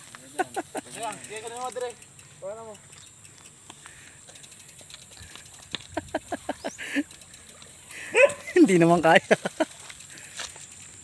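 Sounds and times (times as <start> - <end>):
bike clicks and light knocks: 0.0 - 11.0
freewheel ticking: 0.0 - 11.0.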